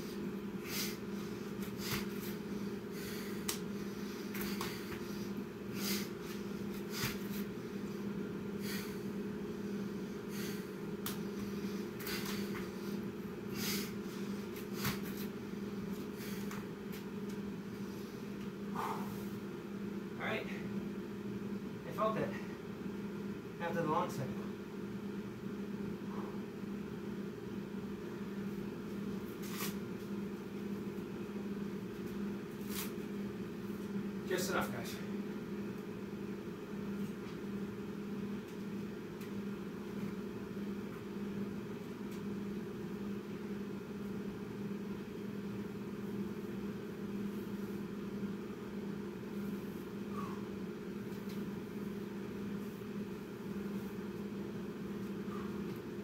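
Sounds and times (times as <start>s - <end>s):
low mechanical hum: 0.0s - 56.0s.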